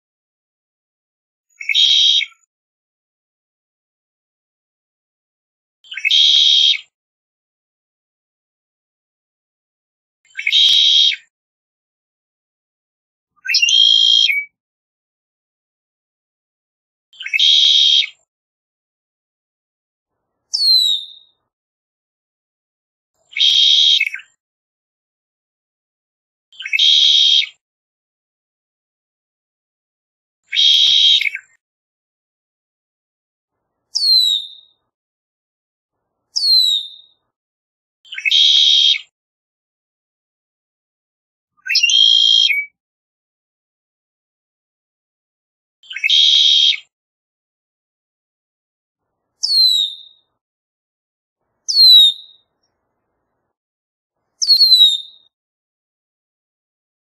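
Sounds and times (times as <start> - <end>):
blackbird singing trilled phrases: 1.5 - 2.4, 5.9 - 6.9, 10.3 - 11.3, 13.4 - 14.5, 17.2 - 18.2, 20.5 - 21.4, 23.3 - 24.4, 26.6 - 27.5, 30.5 - 31.6, 34.0 - 34.8, 36.4 - 37.2, 38.1 - 39.0, 41.6 - 42.7, 45.8 - 46.8, 49.4 - 50.3, 51.7 - 52.4, 54.4 - 55.3
bird whistled notes: 1.6 - 2.4, 13.5 - 14.5, 23.3 - 24.2, 30.5 - 31.4, 34.0 - 34.8, 38.1 - 39.0, 41.6 - 42.7, 45.9 - 46.7, 49.4 - 50.2, 54.4 - 55.2.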